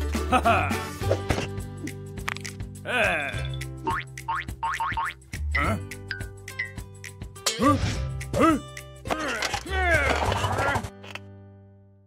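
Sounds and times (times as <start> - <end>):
cartoon background music: 0.0 - 11.2
boing comedy sound effects: 3.8 - 5.8.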